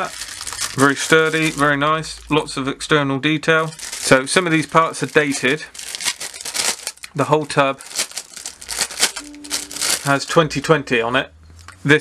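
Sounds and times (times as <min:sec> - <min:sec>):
plastic bag crinkling: 0:00.0 - 0:01.9, 0:03.7 - 0:10.5.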